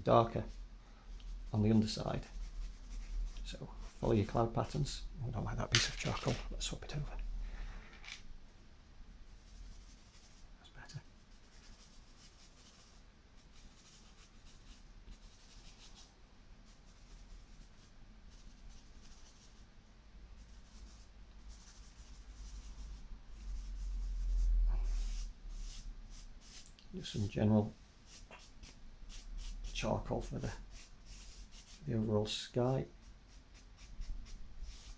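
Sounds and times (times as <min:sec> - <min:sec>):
charcoal scraping on paper: 0:28.1 - 0:31.9.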